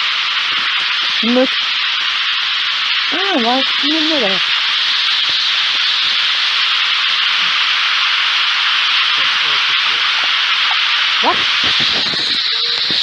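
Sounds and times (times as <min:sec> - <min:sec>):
radio static hiss: 0:00.0 - 0:13.0.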